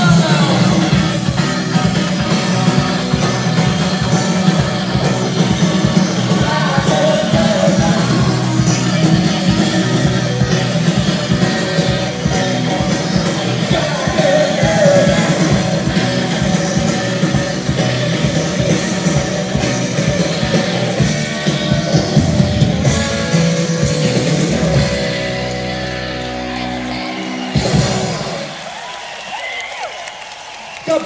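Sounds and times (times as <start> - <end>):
person singing: 0.0 - 1.0, 4.9 - 10.3, 12.2 - 17.1
live rock band playing: 0.0 - 29.4.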